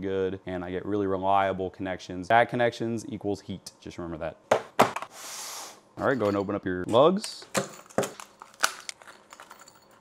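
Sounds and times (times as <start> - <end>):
plastic crinkling: 7.9 - 9.6.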